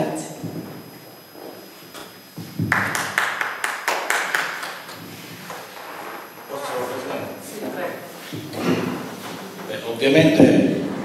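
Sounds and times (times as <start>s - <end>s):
people applauding: 2.6s - 5.0s.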